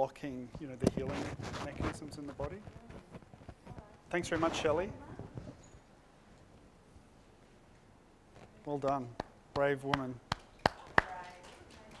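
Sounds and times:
hand claps: 8.8 - 12.0.

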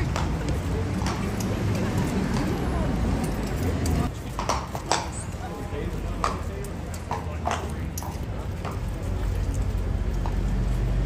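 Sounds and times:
hooves clacking on stone floor: 0.0 - 11.0.

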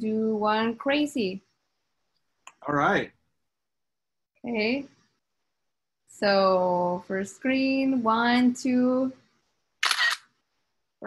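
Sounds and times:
camera shutter sound: 9.8 - 10.3.

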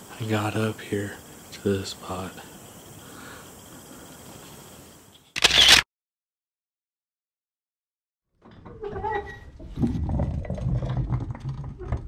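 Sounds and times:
faint room hiss: 0.0 - 5.2
camera shutter: 5.3 - 5.9.

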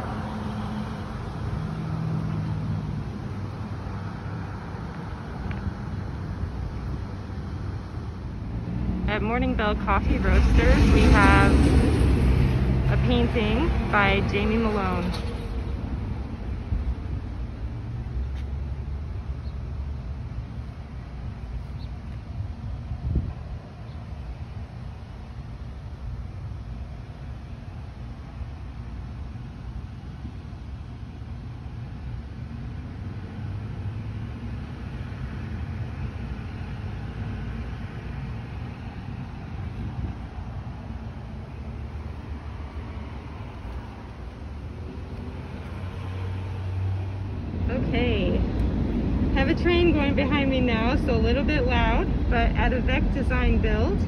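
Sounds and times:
road traffic rumble: 0.0 - 54.0.

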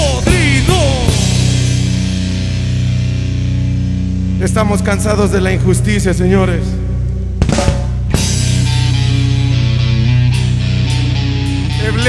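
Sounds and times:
drum kit playing: 0.0 - 6.6, 7.2 - 12.0
distorted electric guitar: 0.0 - 12.0
electric bass: 0.0 - 12.0.

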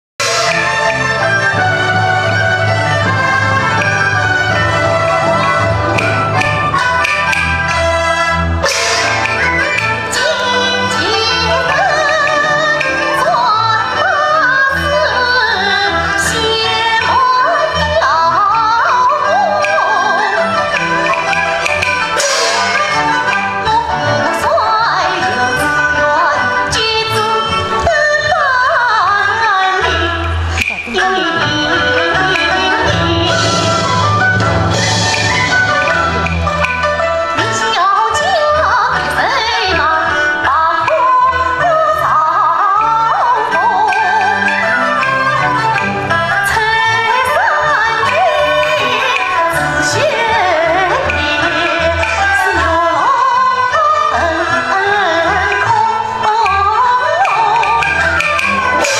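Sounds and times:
sharp percussion strikes: 0.2 - 13.8, 19.6 - 24.5, 30.4 - 38.3, 56.4 - 58.9
instrumental accompaniment: 0.2 - 58.9
woman singing opera: 10.1 - 21.4, 22.7 - 34.0, 37.4 - 58.9.

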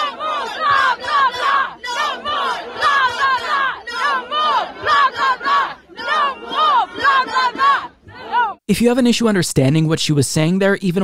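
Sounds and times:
crowd chanting and shouting: 0.0 - 8.6.

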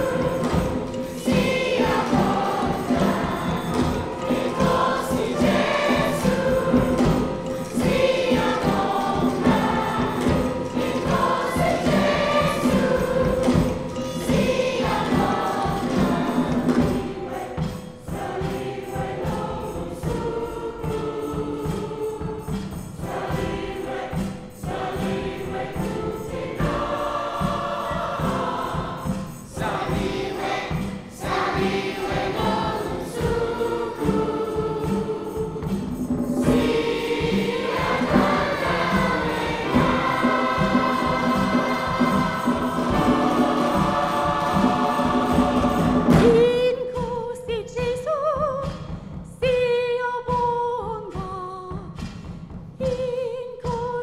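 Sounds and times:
choir singing with orchestra: 0.0 - 47.8.

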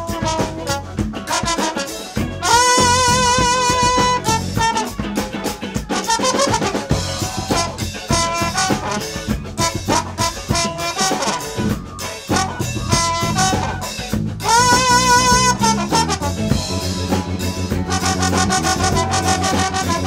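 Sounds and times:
drum kit: 0.0 - 20.0
electric bass: 0.0 - 20.0
horn section with trombone: 0.0 - 20.0.

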